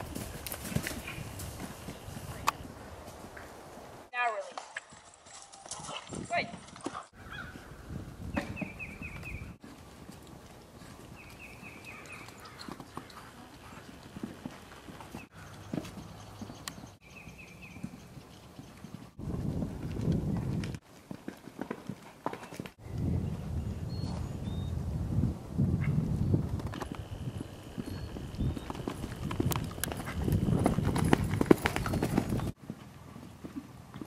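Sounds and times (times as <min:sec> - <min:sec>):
horse hooves cantering: 0:00.0 - 0:07.6, 0:08.4 - 0:22.8, 0:26.4 - 0:34.0.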